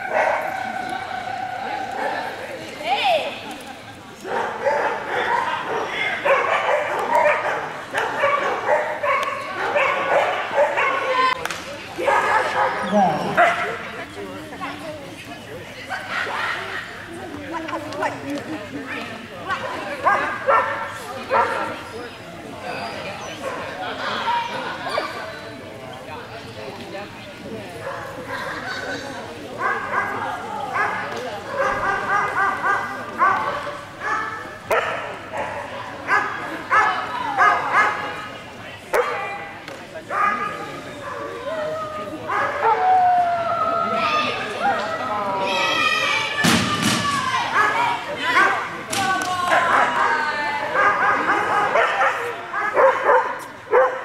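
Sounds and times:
background chatter in echoing hall: 0.0s - 54.0s
dog barking: 4.3s - 11.1s, 12.0s - 13.8s, 20.0s - 21.6s, 31.6s - 38.0s, 39.0s - 39.3s, 40.1s - 40.5s, 50.8s - 54.0s.

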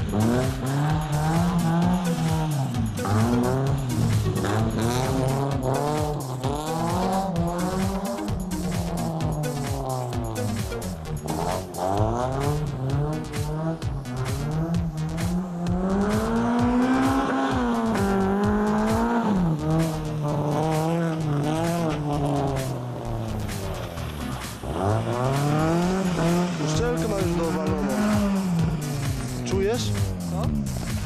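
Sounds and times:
rally car engine revving: 0.0s - 31.0s.

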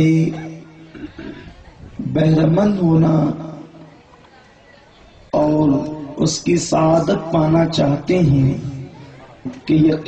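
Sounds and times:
man's amplified voice: 0.0s - 1.4s, 2.0s - 3.9s, 5.3s - 10.0s.

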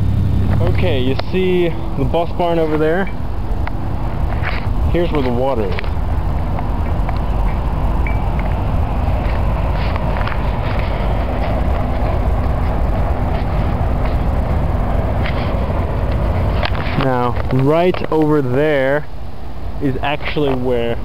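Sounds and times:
outdoor rumble and hiss: 0.0s - 21.0s.

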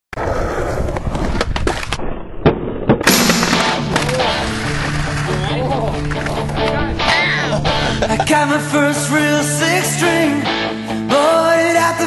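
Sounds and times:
skateboard rolling on concrete: 0.1s - 2.2s, 3.9s - 8.1s
hard impacts: 2.4s - 5.3s
music: 3.1s - 12.0s
skateboard clacks: 3.9s - 6.8s.

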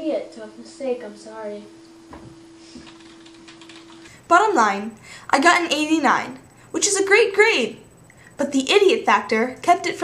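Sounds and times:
steady hum: 0.0s - 10.0s.

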